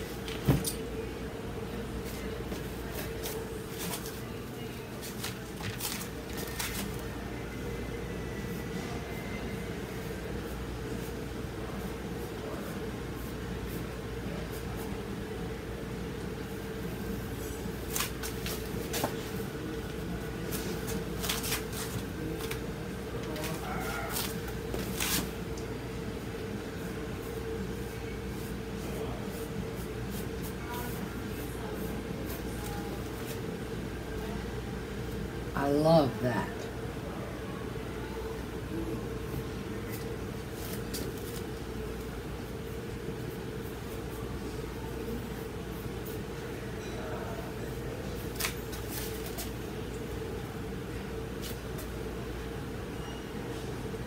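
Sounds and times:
low room hum: 0.0 - 54.0.

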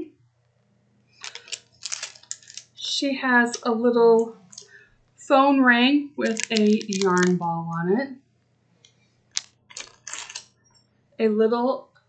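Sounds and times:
plastic packaging crinkling: 1.2 - 4.9, 6.2 - 7.4, 9.3 - 10.5.

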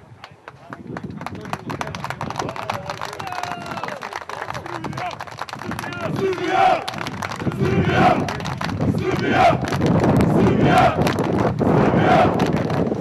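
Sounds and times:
hand claps: 0.2 - 10.2, 11.0 - 11.7
crowd chanting: 6.0 - 8.3, 8.9 - 9.7, 10.3 - 12.4.

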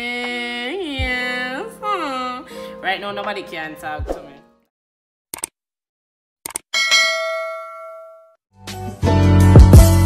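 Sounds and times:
music: 0.0 - 4.7, 8.6 - 10.0
notification bell ding: 6.8 - 8.3.

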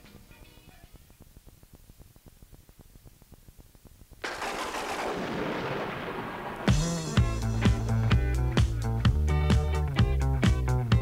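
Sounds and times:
loud blast-like crash and rumble: 4.2 - 8.2.

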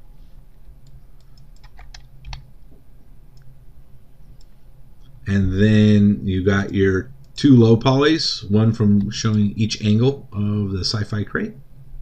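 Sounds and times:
low steady hum: 0.0 - 12.0
keyboard and mouse clicks: 0.8 - 2.5.

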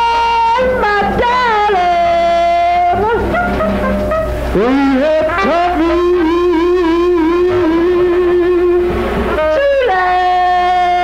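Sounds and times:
guitar: 0.0 - 11.0.

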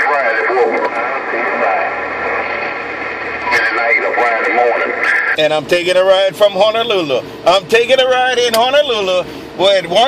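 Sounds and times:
voice over radio speaker: 0.0 - 6.8.

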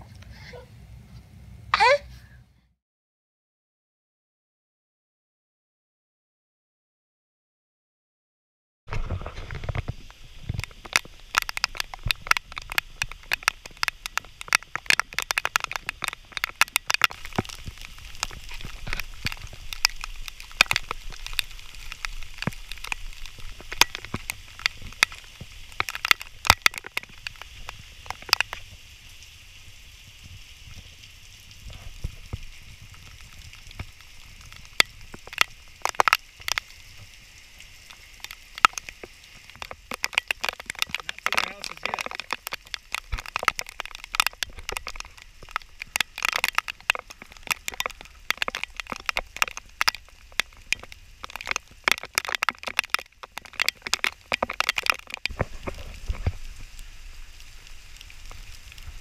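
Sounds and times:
heavy rain: 8.9 - 59.0
raindrops tapping near microphone: 8.9 - 59.0.

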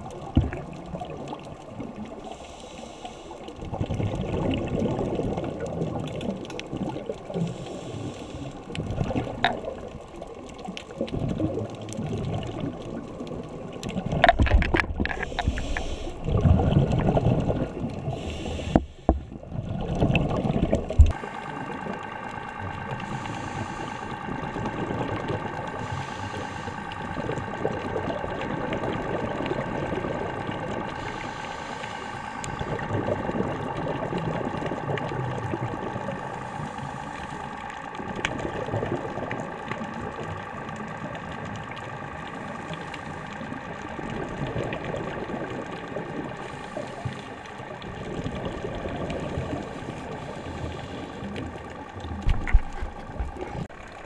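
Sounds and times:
exhaled bubbles: 0.0 - 2.6, 3.4 - 54.0
boat engine whine underwater: 0.0 - 54.0
diver's regulator breathing: 2.2 - 3.6, 7.3 - 8.9, 15.0 - 19.4, 21.1 - 44.1, 46.2 - 47.9, 49.1 - 53.7.

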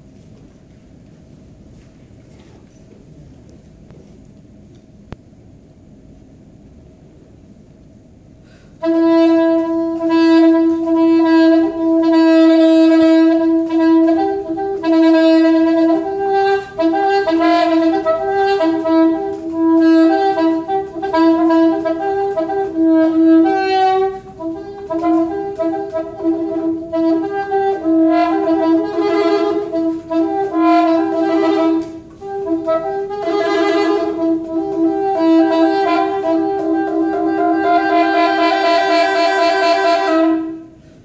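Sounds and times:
soprano saxophone playing: 8.8 - 41.0.

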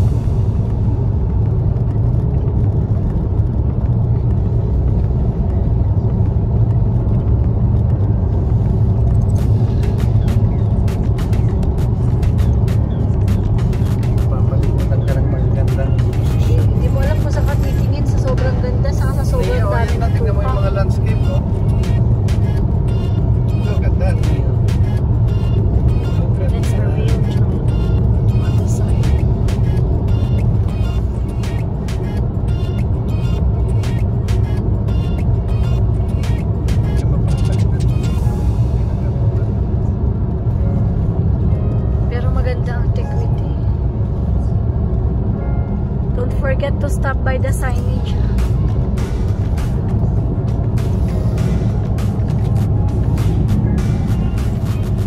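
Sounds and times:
road and engine drone in car: 0.0 - 55.0
music with steady beat: 48.2 - 55.0.

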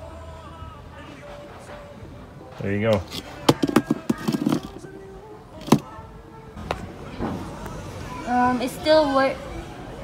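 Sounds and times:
wrench put down on concrete: 2.9 - 4.8, 5.6 - 5.9.

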